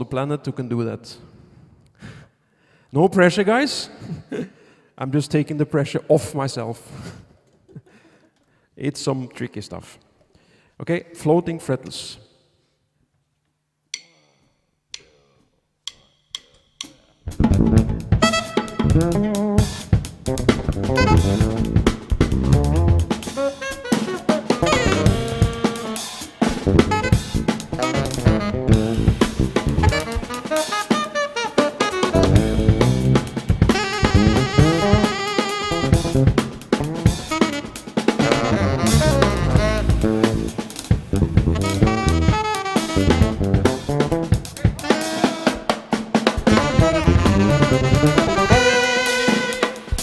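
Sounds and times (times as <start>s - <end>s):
drum kit: 15.9s - 50.0s
fretless electric bass: 17.3s - 19.3s, 20.4s - 23.1s, 24.6s - 25.4s, 26.5s - 30.1s, 32.2s - 35.0s, 38.4s - 44.0s, 46.4s - 48.5s
saxophones playing: 17.3s - 50.0s.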